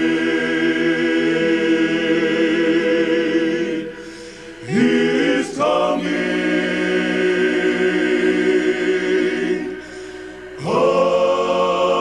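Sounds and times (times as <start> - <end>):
men's vocal group singing a cappella: 0.0 - 12.0.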